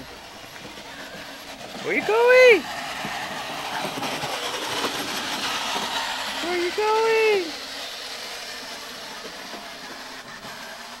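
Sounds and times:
plastic wheels rolling over grass: 0.0s - 7.6s
electric motor whirring: 0.0s - 11.0s.

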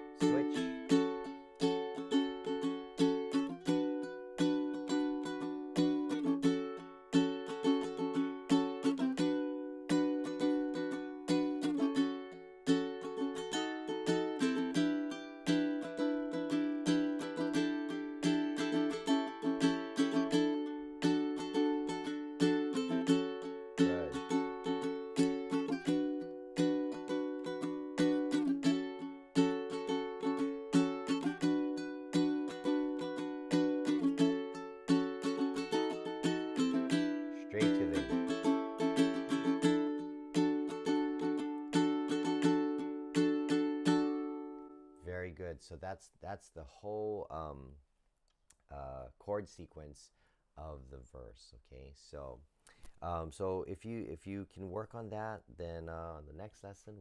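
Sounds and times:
ukulele strumming: 0.0s - 45.0s.

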